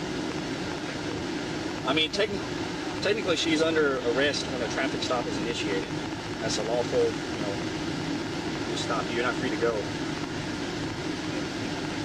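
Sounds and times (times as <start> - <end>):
car idling: 0.0 - 12.0
road traffic hum: 0.0 - 12.0.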